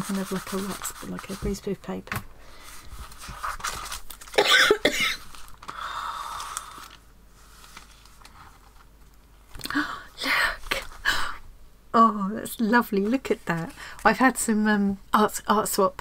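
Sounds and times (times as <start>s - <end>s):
paper rustling: 0.0s - 1.8s, 2.6s - 4.4s, 5.2s - 9.2s
woman coughing: 4.4s - 5.2s.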